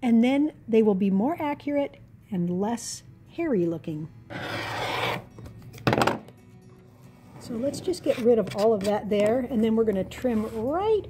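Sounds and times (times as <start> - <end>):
rotary cutter rasping through fabric: 4.3 - 5.3.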